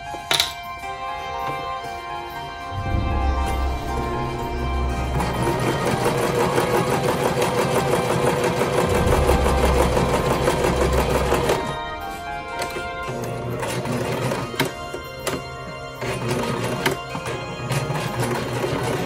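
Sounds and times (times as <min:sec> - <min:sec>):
sewing machine stitching: 0:16.0 - 0:19.0.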